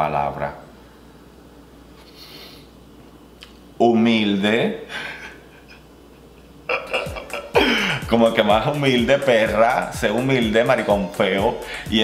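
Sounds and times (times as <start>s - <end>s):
person laughing: 4.9s - 8.1s.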